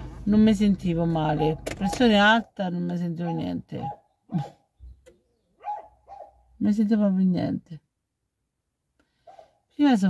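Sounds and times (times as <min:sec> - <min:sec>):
dog barking: 0:03.2 - 0:04.6, 0:05.6 - 0:06.4, 0:09.2 - 0:09.6.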